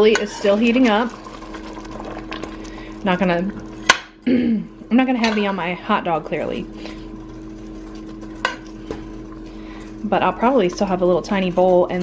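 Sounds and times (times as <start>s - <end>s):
metal spoon stirring in pot: 6.8s - 10.0s.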